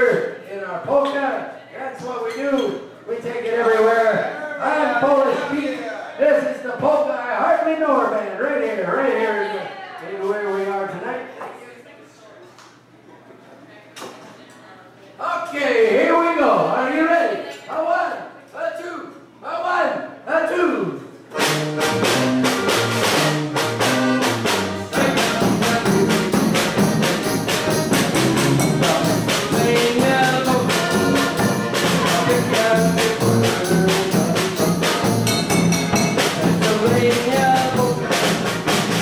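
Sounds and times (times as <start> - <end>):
accordion chords: 21.3 - 39.0
oom-pah bass line: 21.4 - 39.0
snare and bass drum beat: 21.4 - 39.0.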